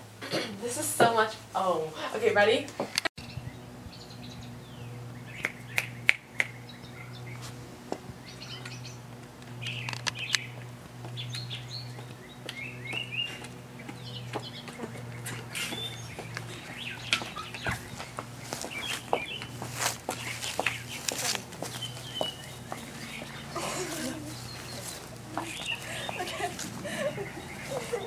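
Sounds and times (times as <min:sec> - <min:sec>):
songbirds chirping: 0:00.0 - 0:28.0
steady low hum: 0:00.0 - 0:28.0
high-heeled footsteps on concrete: 0:10.4 - 0:28.0.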